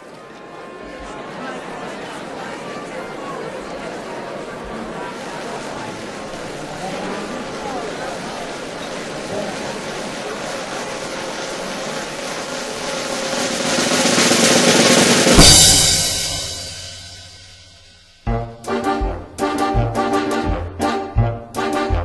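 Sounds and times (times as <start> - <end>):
snare drum roll: 5.6 - 20.6
cymbal crash ringing: 13.2 - 18.3.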